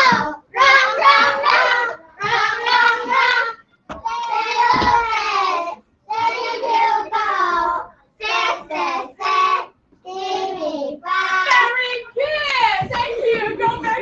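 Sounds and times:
children chanting a rhyme: 0.0s - 12.0s.

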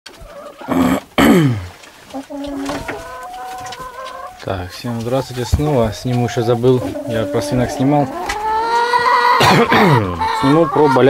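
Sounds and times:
hens squawking: 0.1s - 0.9s, 1.9s - 11.0s.

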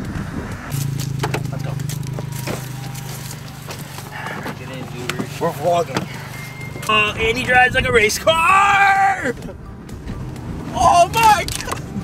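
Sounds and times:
car door handle and latch clicks: 1.1s - 1.5s, 11.2s - 11.9s.

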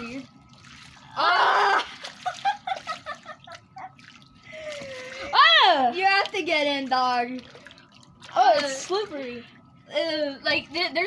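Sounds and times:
water beads sloshing: 0.0s - 9.9s
laughter: 2.1s - 4.0s.

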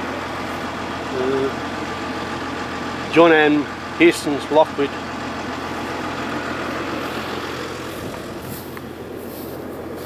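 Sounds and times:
tractor diesel engine idling: 0.0s - 10.0s.

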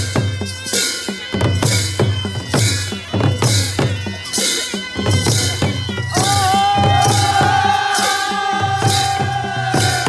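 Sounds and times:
drum beat: 1.1s - 10.0s.

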